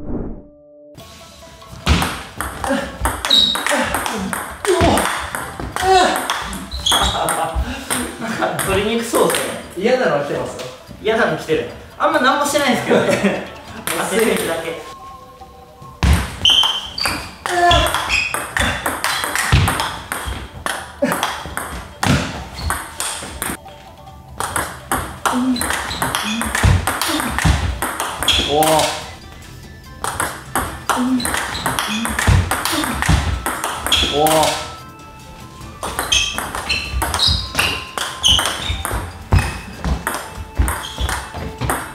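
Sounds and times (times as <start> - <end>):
ball bouncing on table: 1.9 - 8.0, 16.0 - 23.6, 24.4 - 29.0, 30.0 - 34.6, 35.8 - 41.9
ping pong ball clicking off paddles: 1.9 - 9.6, 16.0 - 23.6, 24.4 - 29.0, 30.0 - 34.7, 35.8 - 41.9.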